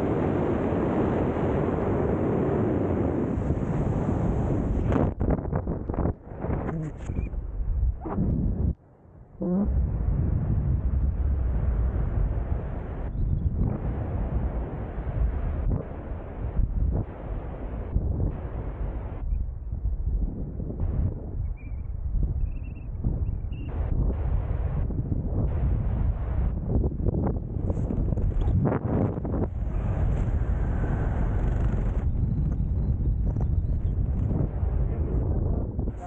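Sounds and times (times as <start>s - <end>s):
wind rushing over microphone: 0.0s - 8.8s, 9.4s - 36.0s.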